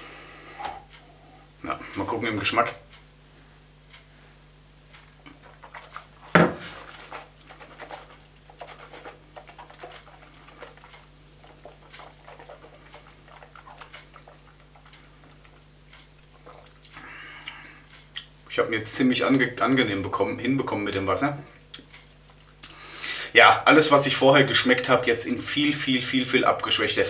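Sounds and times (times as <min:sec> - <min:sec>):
lip smacks: 0:04.9 - 0:18.4, 0:21.6 - 0:22.8
wet mouth clicks: 0:07.3 - 0:18.4, 0:21.6 - 0:22.8.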